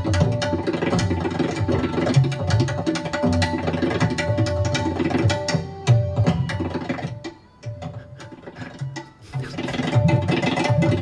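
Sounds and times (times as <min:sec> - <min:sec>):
tabla treble drum strokes: 0:00.0 - 0:11.0.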